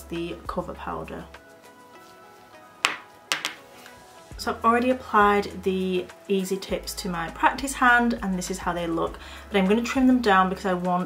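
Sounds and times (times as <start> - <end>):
soft background music: 0.0 - 11.0
sharp taps on jar: 2.8 - 3.6.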